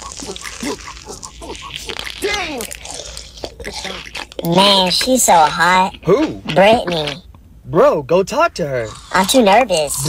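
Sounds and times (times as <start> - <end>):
candy crunching: 0.0 - 7.2.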